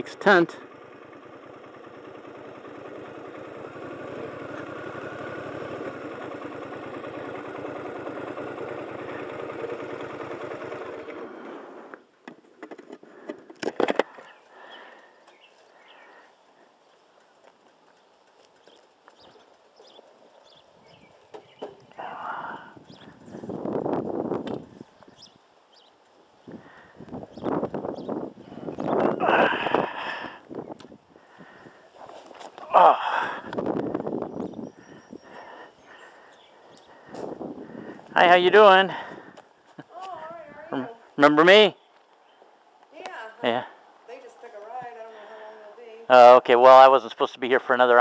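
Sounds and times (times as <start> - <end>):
motorcycle engine running: 0.0 - 12.2, 14.2 - 41.6
rustling: 31.6 - 32.7.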